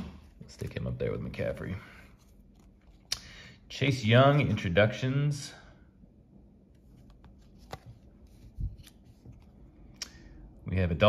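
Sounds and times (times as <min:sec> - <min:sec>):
trading cards shuffling: 0:06.8 - 0:09.8.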